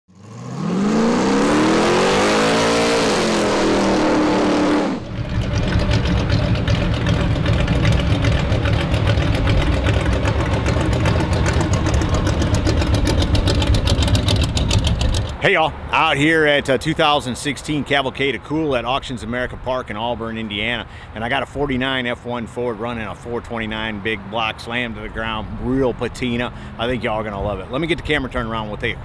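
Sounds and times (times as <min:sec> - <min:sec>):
engine revving up: 0:00.1 - 0:15.4
truck engine rumbling past: 0:00.1 - 0:29.0.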